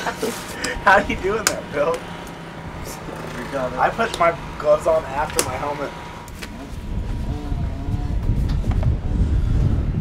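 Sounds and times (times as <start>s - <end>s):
wind buffeting microphone: 0.6s - 10.0s.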